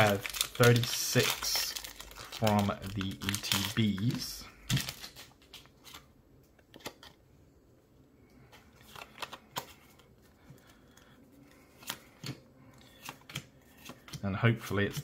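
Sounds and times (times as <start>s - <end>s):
cards sliding and rustling: 11.4s - 14.2s.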